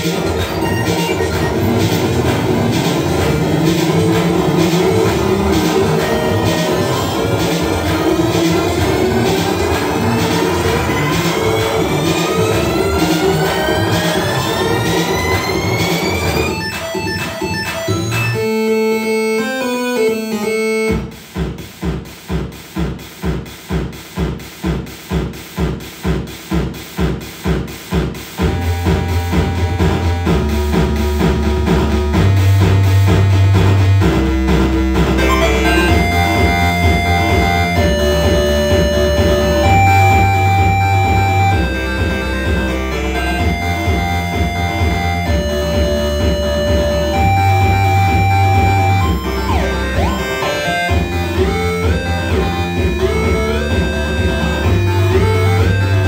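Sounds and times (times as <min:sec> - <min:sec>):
dense electronic music: 0:00.0 - 0:56.0.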